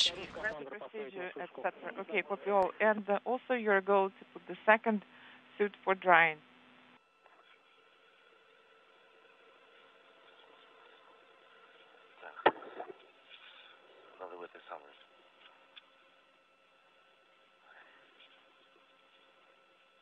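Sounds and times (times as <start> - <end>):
steady background hum and hiss: 0.0 - 6.4, 7.0 - 20.0.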